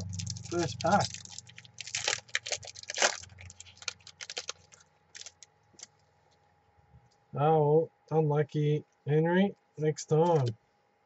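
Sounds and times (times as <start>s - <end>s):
wrapper tearing and crinkling: 0.0s - 5.9s.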